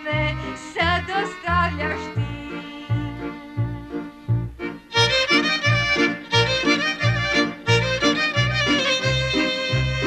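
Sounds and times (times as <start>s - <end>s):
double bass plucking: 0.0s - 10.0s
fiddle melody: 0.0s - 10.0s.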